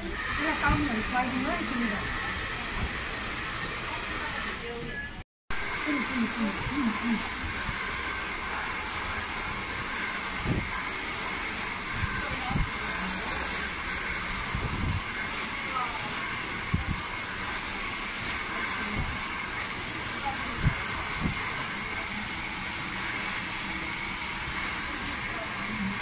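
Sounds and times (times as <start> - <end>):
hair dryer blowing: 0.0 - 4.9, 5.5 - 26.0.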